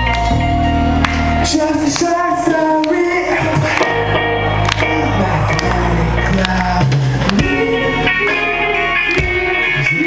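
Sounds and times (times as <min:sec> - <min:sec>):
low held bass notes: 0:00.0 - 0:10.0
rock band playing live: 0:00.0 - 0:10.0.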